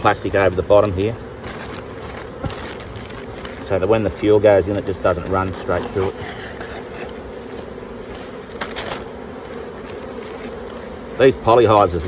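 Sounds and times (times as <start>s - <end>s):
bees buzzing: 0.0s - 12.0s.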